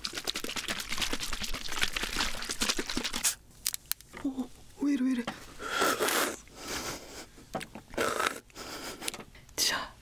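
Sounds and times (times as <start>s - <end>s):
carbonated drink fizzing: 0.0s - 3.4s.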